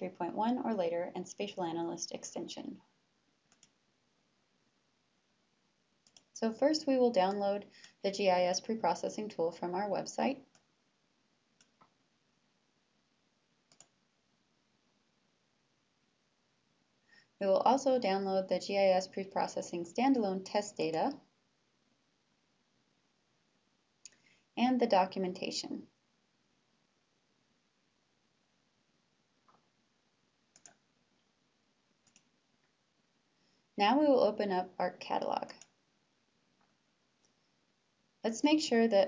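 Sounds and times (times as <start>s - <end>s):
faint background hiss: 0.0s - 39.0s
computer mouse clicks: 3.5s - 3.8s, 6.0s - 6.4s, 11.6s - 12.0s, 13.7s - 14.0s, 24.0s - 24.3s, 30.5s - 30.8s, 32.0s - 32.3s, 35.4s - 35.8s.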